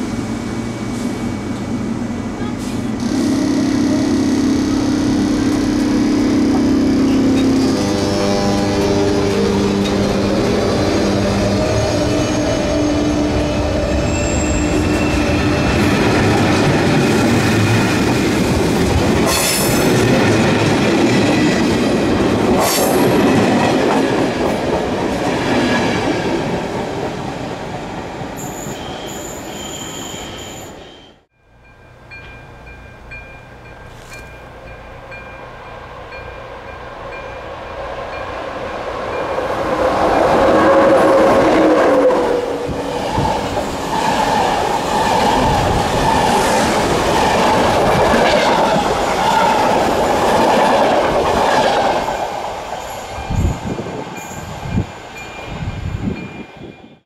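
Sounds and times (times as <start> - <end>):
passenger train passing: 0.0 - 57.0
high wheel squeal: 6.9 - 16.6, 28.4 - 31.3
train wheels rumbling and clattering: 7.0 - 28.5, 37.5 - 56.6.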